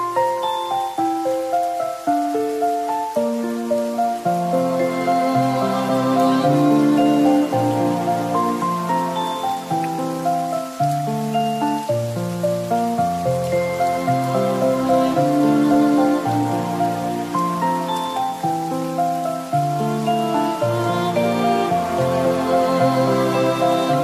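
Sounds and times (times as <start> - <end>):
rain pattering: 0.0 - 24.0
soft slow instrumental music: 0.0 - 24.0.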